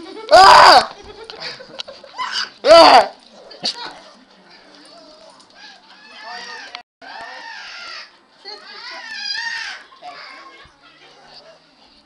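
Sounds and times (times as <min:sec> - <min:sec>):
indistinct voices in a room: 0:00.5 - 0:12.0.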